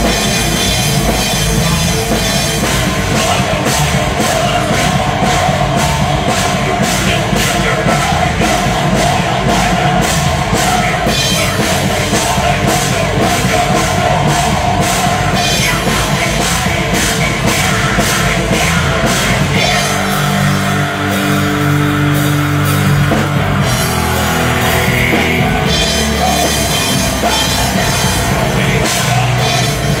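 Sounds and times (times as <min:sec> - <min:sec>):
drum kit fast beat: 0:00.0 - 0:30.0
electric guitars: 0:00.0 - 0:30.0
live rock band playing: 0:00.0 - 0:30.0.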